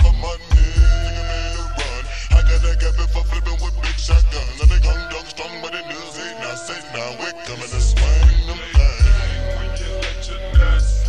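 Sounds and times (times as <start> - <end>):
hard bass hits: 0.0 - 5.0, 7.8 - 11.0
slowed-down hip hop: 0.0 - 11.0.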